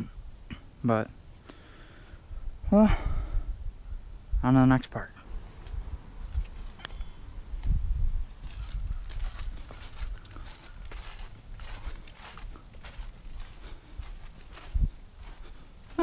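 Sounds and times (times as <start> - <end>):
footsteps swishing through grass: 7.6 - 16.0.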